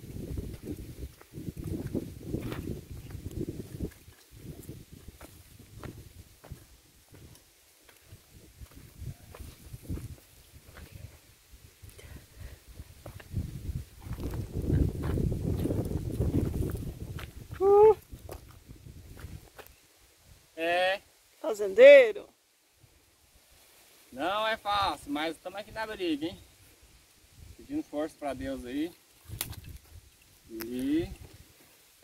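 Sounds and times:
scuffing footsteps: 0.4s - 11.0s
person calling: 17.5s - 18.0s.

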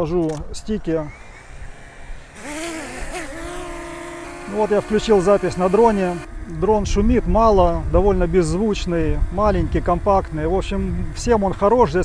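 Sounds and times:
drone propellers whining: 0.6s - 12.0s.

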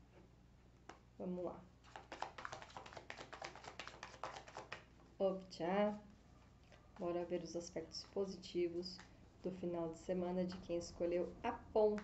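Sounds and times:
cards being shuffled by hand: 1.8s - 5.1s, 6.7s - 9.6s.

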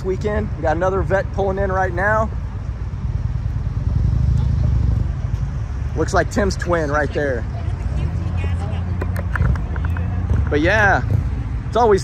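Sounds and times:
car exhaust rumble: 0.0s - 12.0s.

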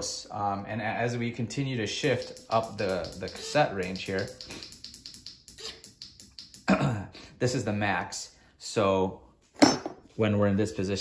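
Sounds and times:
person speaking: 0.0s - 8.0s
bicycle derailleur clicking: 2.1s - 6.7s.

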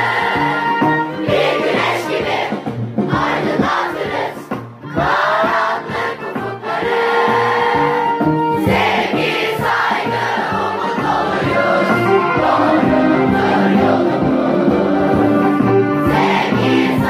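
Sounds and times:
instrumental backing with beat: 0.0s - 17.0s
many voices singing: 0.0s - 17.0s.

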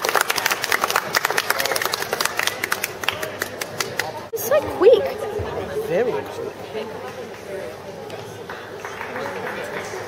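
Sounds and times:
crowd applauding: 0.0s - 4.3s, 8.3s - 10.0s.

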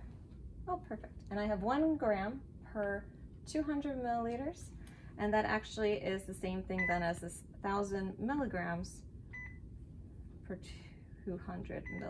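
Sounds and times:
infusion pump beep: 6.8s - 7.0s, 9.3s - 9.6s, 11.8s - 12.0s.

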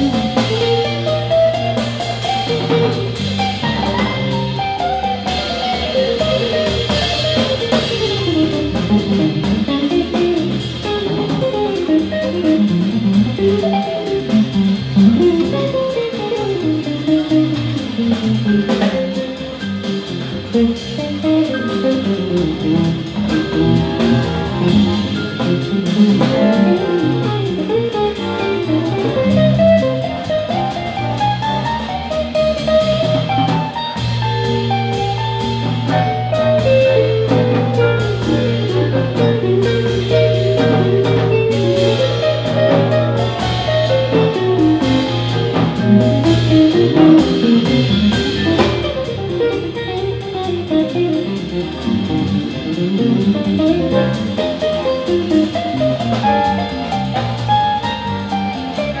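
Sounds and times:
drum kit: 0.0s - 59.0s
electric bass: 0.0s - 59.0s
electric guitar: 0.0s - 59.0s.

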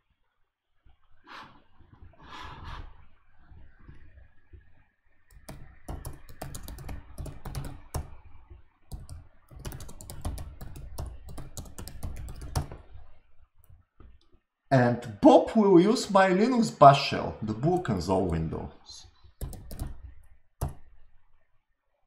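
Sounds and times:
typing on computer keyboard: 5.3s - 8.2s, 8.9s - 12.9s, 19.4s - 20.9s.

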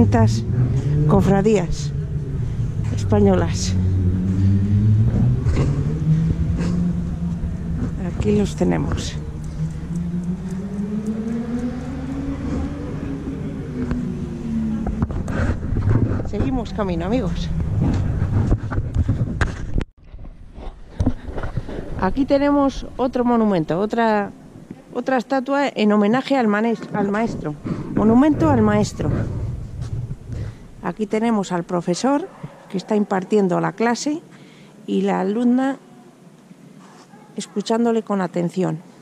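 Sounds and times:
vehicle engine humming: 0.0s - 19.9s, 26.8s - 32.2s
wind rumbling on microphone: 0.0s - 24.8s, 26.8s - 31.8s
outdoor background: 0.0s - 39.0s.

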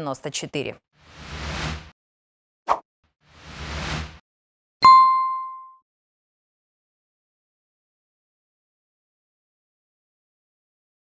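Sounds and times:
bright bell-like ding: 4.8s - 5.8s.

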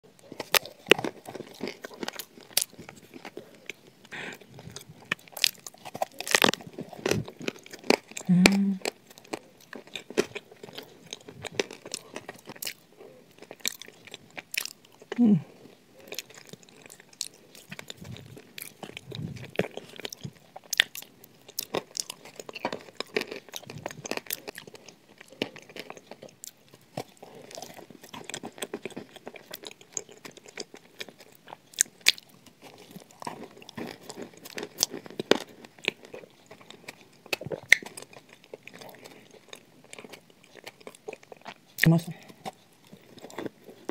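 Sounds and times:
crunching and chewing food: 0.0s - 43.9s
closed-mouth mmm: 8.2s - 8.9s.

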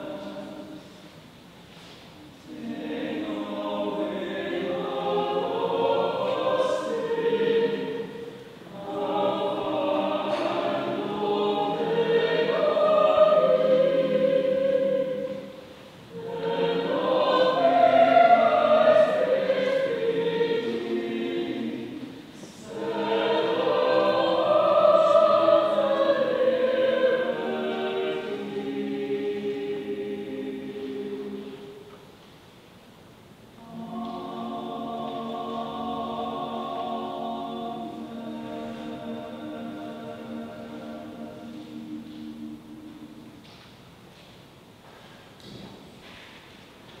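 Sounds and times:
choir singing: 0.0s - 1.1s, 2.2s - 32.0s, 33.5s - 43.5s.

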